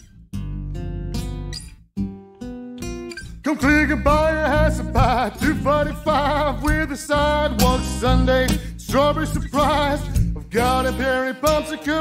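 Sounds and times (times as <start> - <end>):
bass notes: 0.0 - 1.6, 3.6 - 11.2
fingerpicked acoustic guitar: 0.0 - 12.0
man singing: 3.4 - 12.0.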